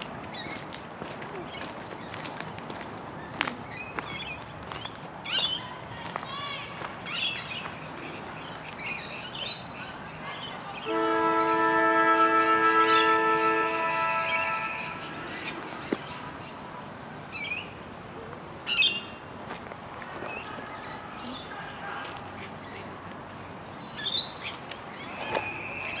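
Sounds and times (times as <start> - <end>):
horn sounding a chord: 10.9 - 15.2
birds chirping and squawking: 12.9 - 16.6.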